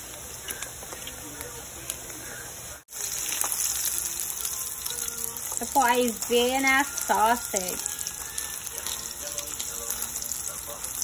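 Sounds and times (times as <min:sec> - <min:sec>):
sausages sizzling in oil: 0:00.0 - 0:11.0.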